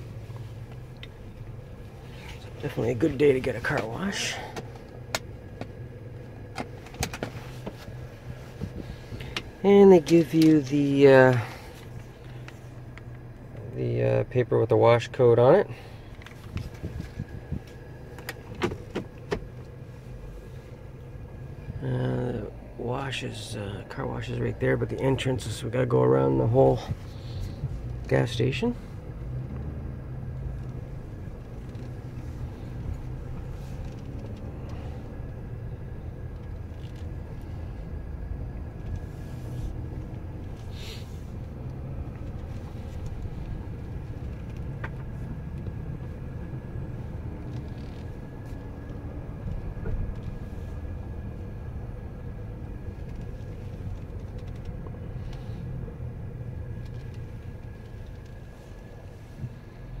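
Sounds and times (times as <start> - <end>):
vehicle engine and tyres rumbling: 0.0 - 60.0.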